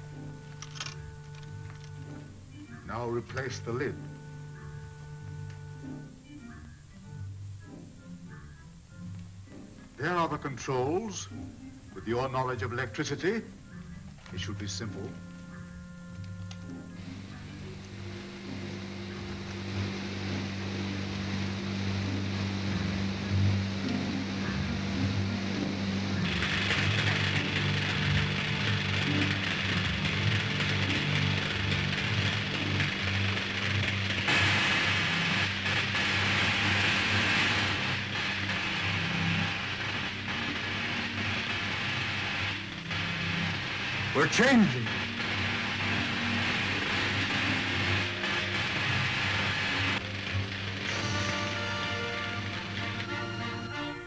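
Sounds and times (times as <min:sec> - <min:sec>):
steady low hum: 0:00.0 - 0:10.0, 0:13.4 - 0:54.0
crackling electrical hiss: 0:00.0 - 0:54.0
film score: 0:00.0 - 0:54.0.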